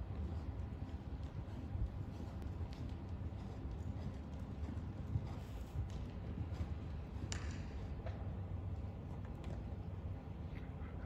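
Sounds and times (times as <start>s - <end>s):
horse hoofbeats on sand: 0.0s - 9.8s.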